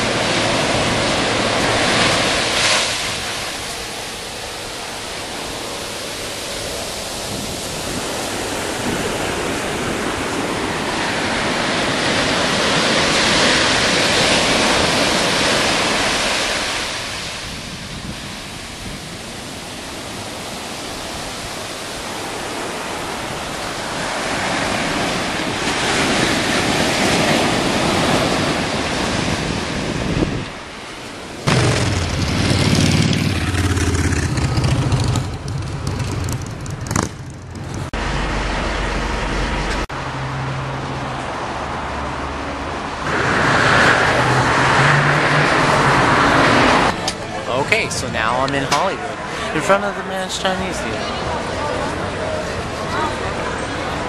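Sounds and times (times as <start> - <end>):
ocean surf breaking on beach: 0.0 - 36.8, 37.6 - 54.0.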